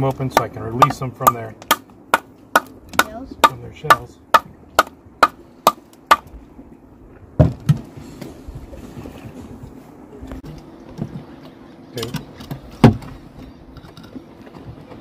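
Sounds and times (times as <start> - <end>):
dull heavy thumps: 7.3 - 8.7, 12.7 - 13.2.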